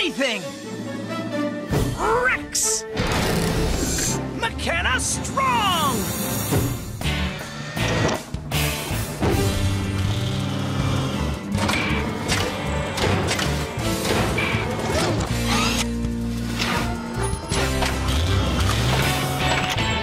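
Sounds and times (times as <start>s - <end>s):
mechanical clanks: 11.5s - 20.0s
cartoon music: 14.9s - 16.0s.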